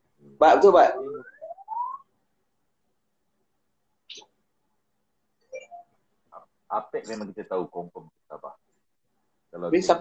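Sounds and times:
rising whistled tones: 0:00.8 - 0:02.2.

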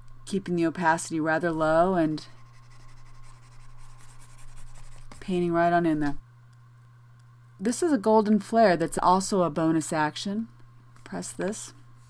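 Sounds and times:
low electrical hum: 0:00.0 - 0:12.0
pen stylus scratching on tablet: 0:02.3 - 0:05.4.

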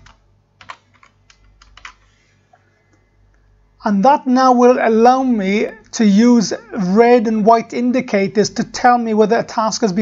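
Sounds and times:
faint keyboard typing: 0:00.0 - 0:02.2.

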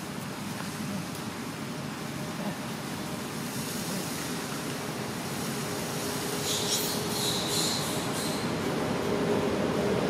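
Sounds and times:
outdoor rushing hiss: 0:00.0 - 0:10.0.

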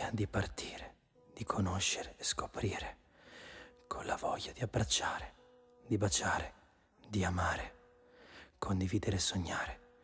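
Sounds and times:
quiet spoken voice: 0:00.0 - 0:03.0, 0:03.8 - 0:07.9, 0:08.6 - 0:10.0.

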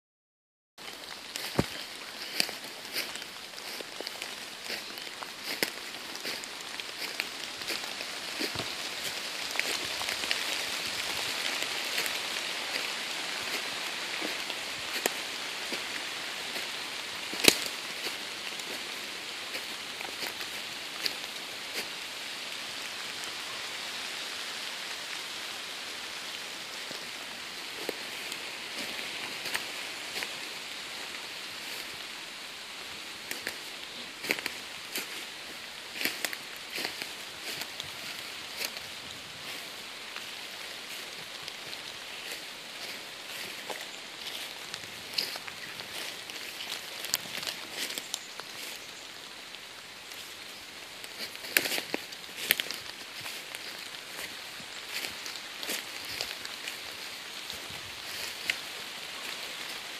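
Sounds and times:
crackles: 0:00.8 - 0:25.4, 0:26.0 - 0:59.9
rain on leaves: 0:00.8 - 0:59.9.

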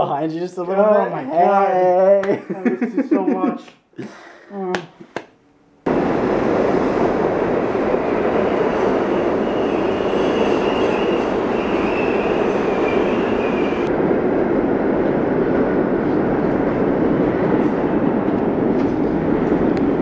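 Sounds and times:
train wheels rumbling on rail: 0:05.9 - 0:20.0
high wheel squeal: 0:08.5 - 0:13.9.

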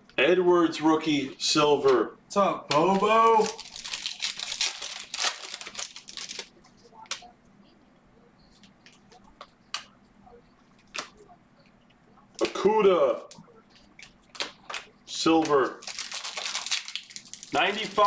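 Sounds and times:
card pack wrapper tearing: 0:02.8 - 0:06.5, 0:15.4 - 0:18.0.

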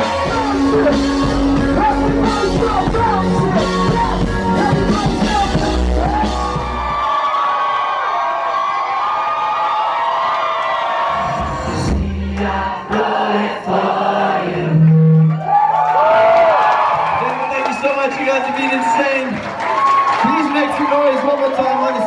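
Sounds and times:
live band music: 0:00.0 - 0:07.0
crowd singing along: 0:11.4 - 0:15.2.

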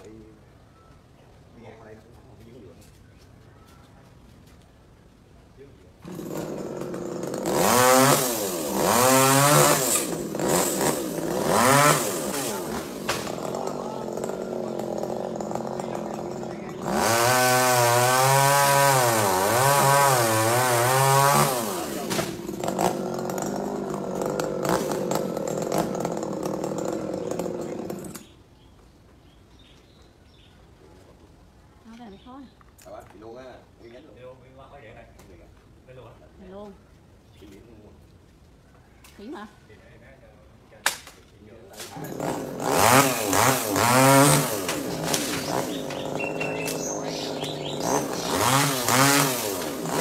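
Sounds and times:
chainsaw revving and cutting: 0:06.0 - 0:28.3, 0:41.8 - 0:50.0.

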